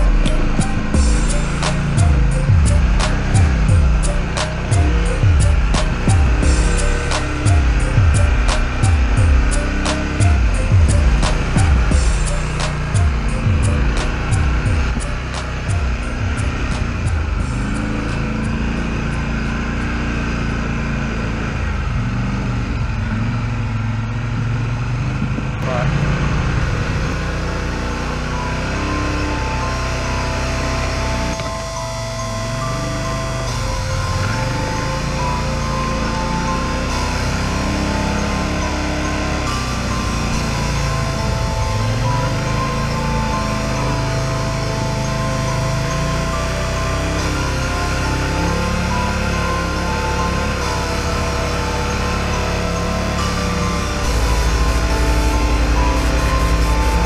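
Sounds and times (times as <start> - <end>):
music with vocals and synth melody: 0.0 - 20.1, 27.2 - 57.0
atv engine revving: 0.0 - 57.0.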